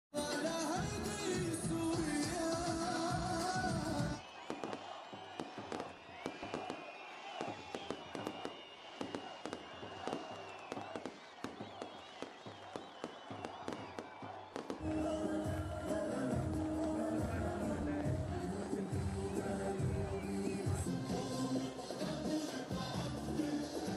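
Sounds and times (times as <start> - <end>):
loud music with singing: 0.2 - 4.2, 14.8 - 23.9
fireworks bangs and crackles: 2.0 - 21.2.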